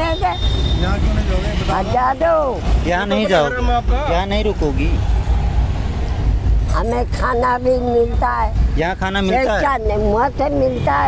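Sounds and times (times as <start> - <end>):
road traffic rumble and hiss: 0.0 - 11.0.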